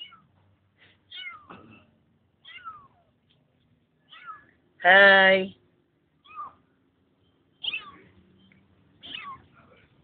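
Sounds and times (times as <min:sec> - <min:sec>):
kitten mewing: 0:01.1 - 0:01.6, 0:02.4 - 0:03.1, 0:04.1 - 0:04.5, 0:06.2 - 0:06.6, 0:07.6 - 0:08.1, 0:09.0 - 0:09.5.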